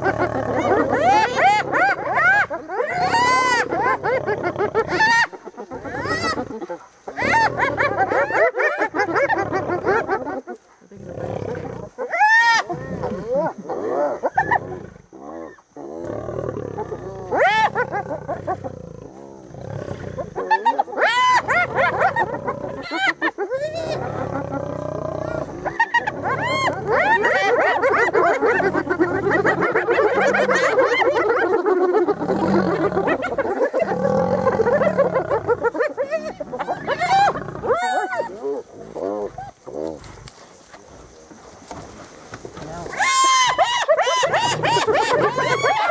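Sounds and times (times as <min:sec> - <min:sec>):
hyenas calling: 0:00.0 - 0:10.4, 0:11.2 - 0:40.2, 0:42.7 - 0:45.9
lionesses growling: 0:00.0 - 0:45.9.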